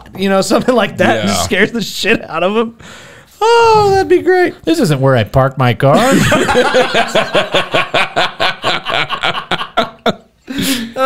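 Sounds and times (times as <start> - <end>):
men laughing: 6.0 - 11.0.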